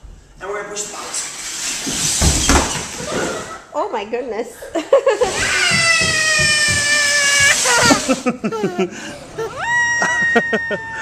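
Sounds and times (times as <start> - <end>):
child squealing: 5.3 - 11.0
giggling: 7.7 - 11.0.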